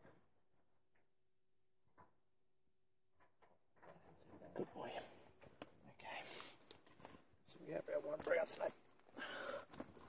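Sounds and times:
rustling and handling noise: 3.2 - 10.0.

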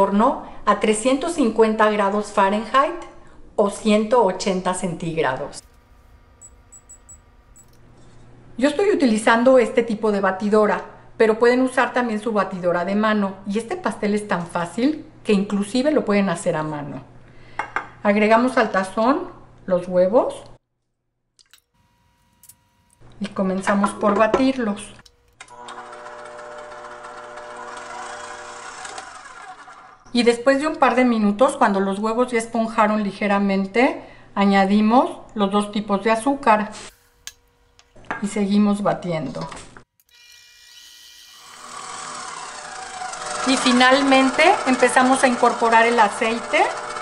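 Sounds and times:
oven keypad beeps: 6.4 - 7.7
stand mixer motor whine: 25.5 - 30.1, 41.5 - 47.0.

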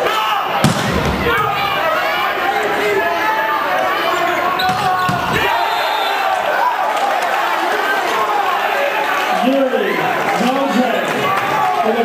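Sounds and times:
crowd and players shouting: 0.0 - 12.0.

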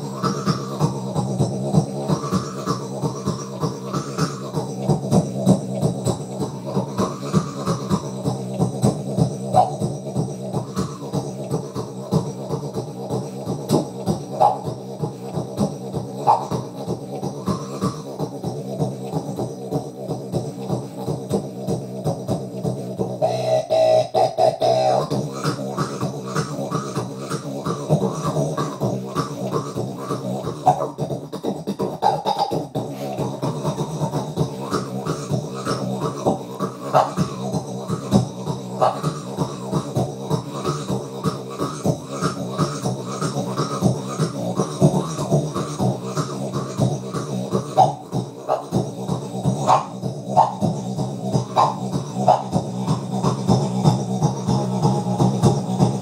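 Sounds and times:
beatbox hits: 0.0 - 56.0
mouth didgeridoo drone: 0.0 - 56.0
vowel-like wah sweep: 0.0 - 56.0.

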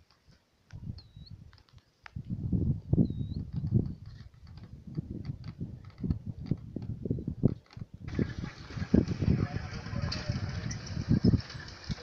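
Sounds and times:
rumbles and thumps on microphone: 2.2 - 12.0.

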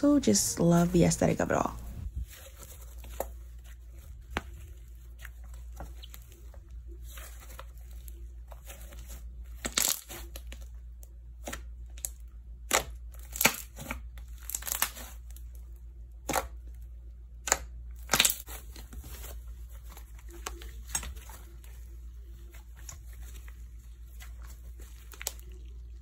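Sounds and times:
low steady hum: 0.0 - 26.0
slime crackling and tearing: 2.2 - 21.8, 22.4 - 26.0.

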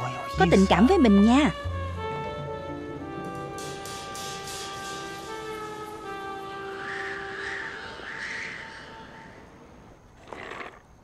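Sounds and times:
held music notes: 0.0 - 8.0
harsh crow caws: 6.6 - 9.6.

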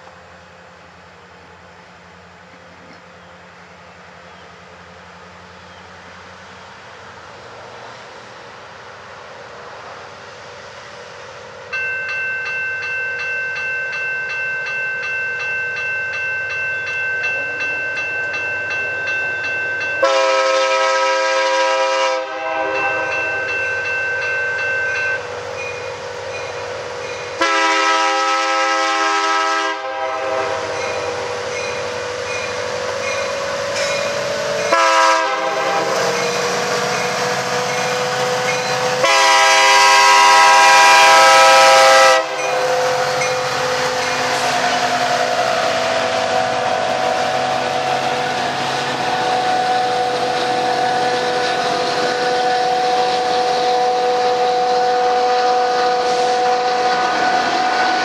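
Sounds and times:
train diesel engines and wheels: 0.0 - 58.0
crossing warning bell: 11.6 - 58.0
locomotive air horn blasts: 20.0 - 23.5, 27.4 - 31.3, 34.7 - 37.0, 38.8 - 47.9, 49.2 - 58.0.

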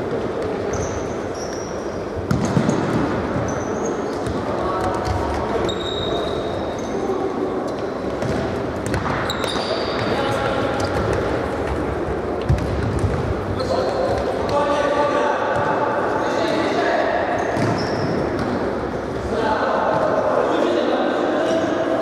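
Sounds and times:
shoes squeaking on court: 0.6 - 11.1, 17.4 - 18.6
ball kicked and bouncing: 12.4 - 13.3.

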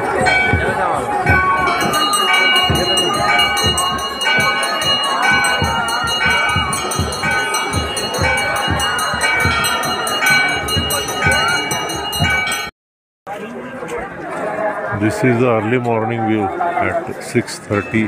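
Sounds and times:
many voices chanting: 0.0 - 12.6
bells ringing: 0.0 - 12.7, 17.7 - 18.0
crowd noise: 0.0 - 12.7, 13.3 - 18.0
steady drum beat: 0.0 - 12.7.

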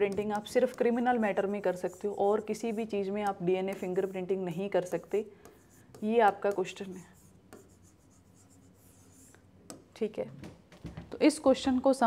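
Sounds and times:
stylus scratching and tapping screen: 0.0 - 10.6.

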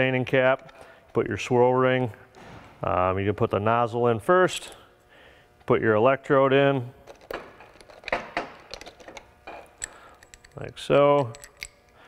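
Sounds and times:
small metal parts clicking: 7.1 - 12.0.

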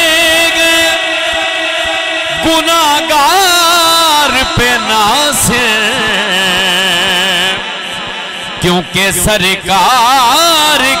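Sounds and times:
man singing unaccompanied: 0.0 - 11.0.

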